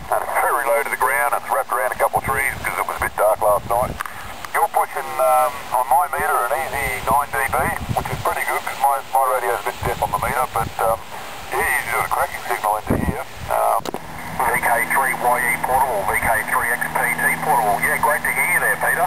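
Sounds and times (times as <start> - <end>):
steady low hum: 0.0 - 19.0
radio voices through speaker: 0.1 - 19.0.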